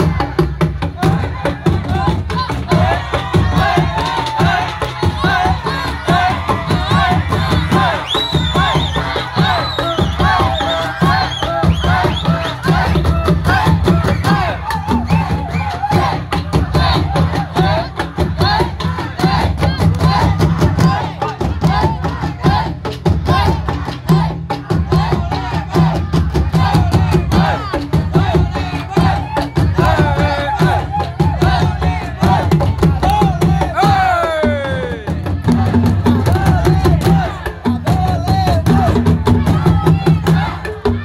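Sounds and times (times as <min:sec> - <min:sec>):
crowd shouting and cheering: 0:00.0 - 0:41.0
large drums beating rhythm: 0:00.0 - 0:41.0.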